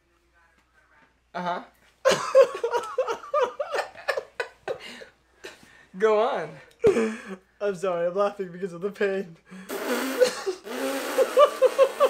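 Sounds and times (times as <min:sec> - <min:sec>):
man wheezing laughter: 0:02.1 - 0:05.1, 0:10.0 - 0:12.0.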